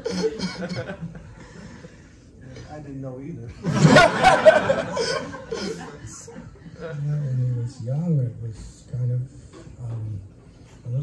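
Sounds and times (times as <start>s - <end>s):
people chuckling and laughing: 0.0s - 2.0s, 3.6s - 7.3s.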